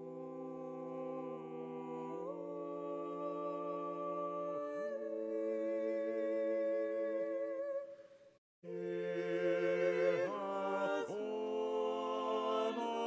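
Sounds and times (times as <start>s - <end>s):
a cappella choir singing: 0.0s - 7.9s, 8.6s - 13.0s.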